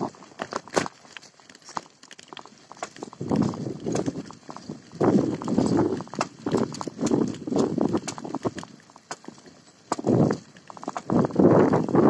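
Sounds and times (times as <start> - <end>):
bicycle rattling on dirt path: 0.0 - 12.0.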